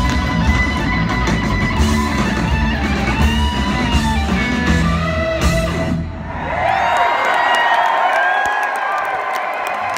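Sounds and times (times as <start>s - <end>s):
electric guitars: 0.0s - 6.5s
bass guitar: 0.0s - 6.6s
drums: 0.0s - 7.2s
crowd noise: 0.0s - 9.9s.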